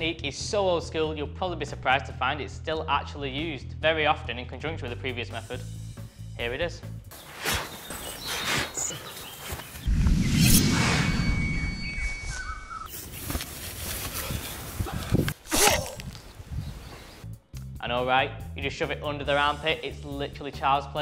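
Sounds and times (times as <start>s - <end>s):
birds chirping faintly: 7.1s - 10.3s, 16.1s - 17.6s
low rumble: 9.8s - 12.9s.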